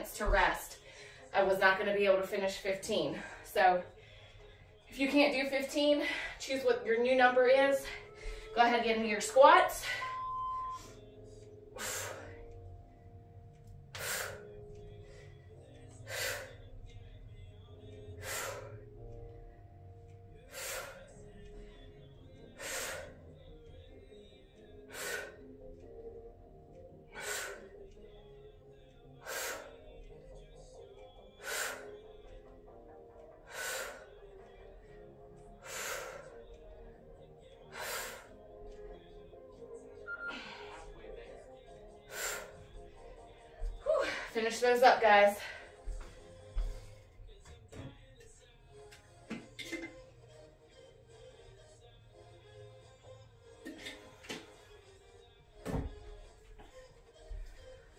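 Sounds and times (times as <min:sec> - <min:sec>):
quiet background music: 0:00.0 - 0:57.9
woman breathing forcefully: 0:00.6 - 0:01.4, 0:03.1 - 0:04.9, 0:07.7 - 0:08.6, 0:09.4 - 0:47.4.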